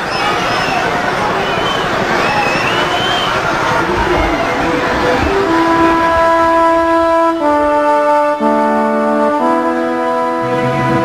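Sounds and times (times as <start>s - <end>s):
crowd noise: 0.0s - 11.0s
brass chord: 4.6s - 11.0s.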